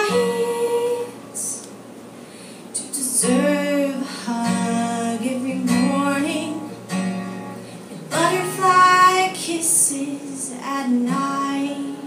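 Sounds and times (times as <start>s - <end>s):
woman singing a ballad: 0.0s - 1.8s, 2.7s - 6.9s, 8.0s - 12.0s
acoustic guitar: 0.0s - 12.0s.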